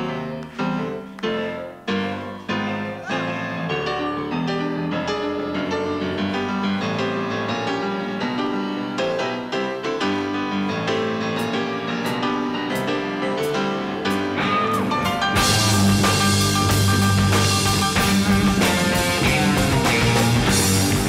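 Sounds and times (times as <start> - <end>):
rock band led by piano: 0.0 - 21.0.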